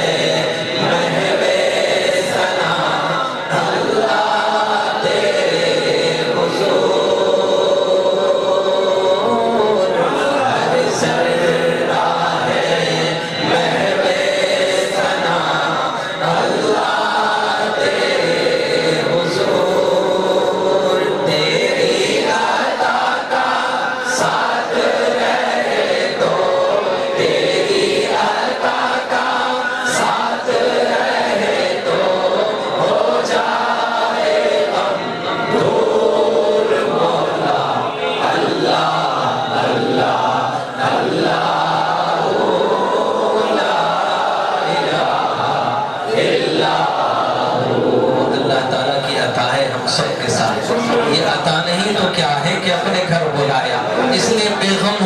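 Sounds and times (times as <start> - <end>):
men chanting in unison: 0.0 - 55.0.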